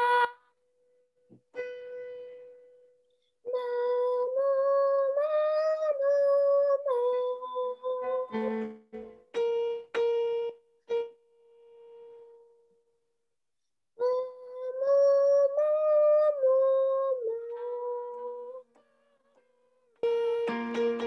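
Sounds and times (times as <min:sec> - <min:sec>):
high voice singing a scale: 0:00.0 - 0:00.5, 0:03.5 - 0:08.6, 0:14.0 - 0:18.8
piano notes: 0:07.6 - 0:12.6, 0:20.0 - 0:21.0.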